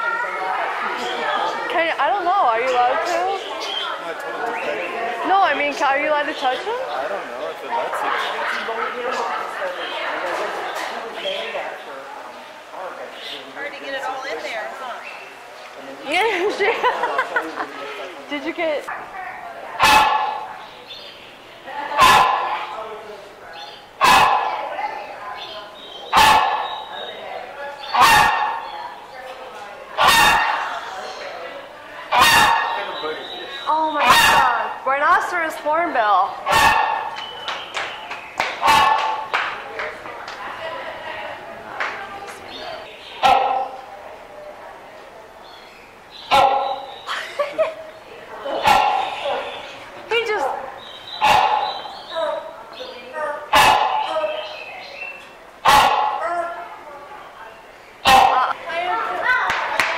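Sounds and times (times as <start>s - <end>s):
hornbill barking calls: 19.8s - 29.2s, 29.9s - 35.5s, 36.2s - 39.6s, 42.5s - 44.3s, 45.4s - 58.6s
wavering bird calls: 19.8s - 29.4s, 30.0s - 35.4s, 36.0s - 39.3s, 45.4s - 55.4s.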